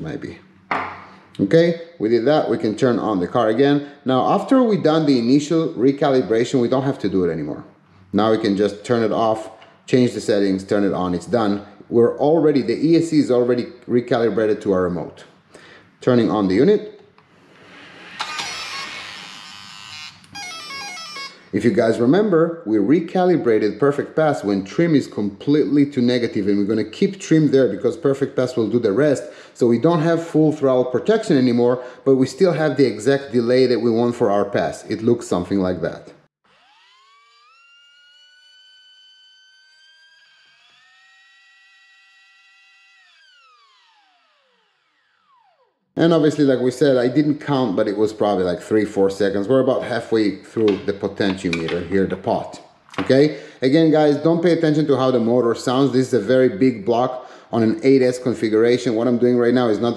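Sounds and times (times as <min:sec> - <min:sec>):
electric motor whine: 0:36.4 - 0:45.8
electronic start-up tones: 0:36.5 - 0:45.8.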